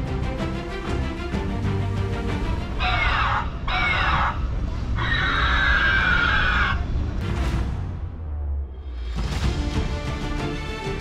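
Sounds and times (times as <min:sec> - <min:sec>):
background music: 0:00.0 - 0:06.4, 0:07.0 - 0:11.0
screeching dinosaur calls: 0:02.8 - 0:06.9.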